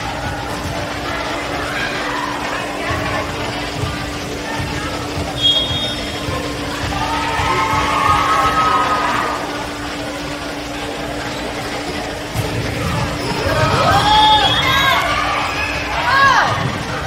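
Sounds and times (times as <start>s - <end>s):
steady low hum: 0.0s - 17.0s
voices: 0.0s - 17.0s
high whistle: 5.4s - 6.2s, 13.9s - 15.8s.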